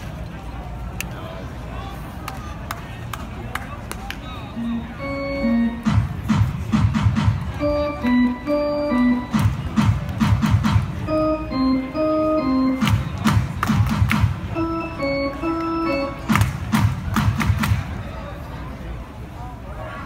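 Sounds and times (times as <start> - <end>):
ballpark organ playing: 4.5 - 16.9
sharp rhythmic beats: 4.6 - 18.0.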